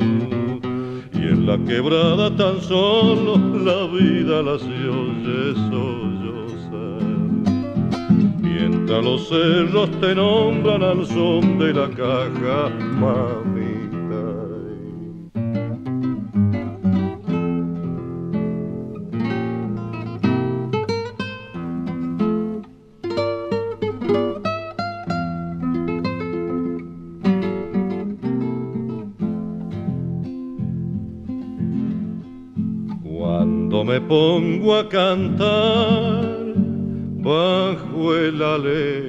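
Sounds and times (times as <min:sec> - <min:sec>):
man singing: 0:00.0 - 0:07.8, 0:08.4 - 0:15.3, 0:33.0 - 0:39.0
acoustic guitar playing: 0:00.0 - 0:39.0.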